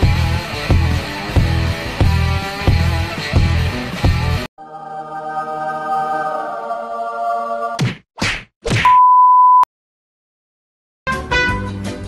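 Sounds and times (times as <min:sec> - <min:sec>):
intro music held chord: 0:04.6 - 0:07.8
steady test-tone beep: 0:08.9 - 0:09.7.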